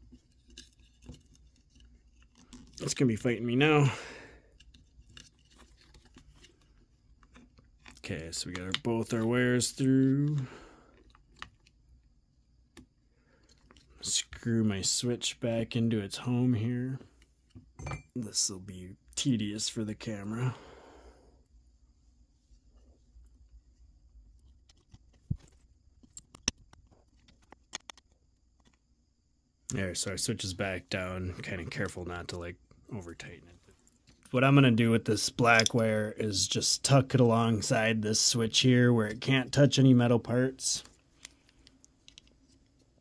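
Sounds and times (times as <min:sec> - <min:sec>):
cable handling in plastic housing: 0:10.2 - 0:11.8, 0:24.4 - 0:28.8, 0:40.9 - 0:42.4.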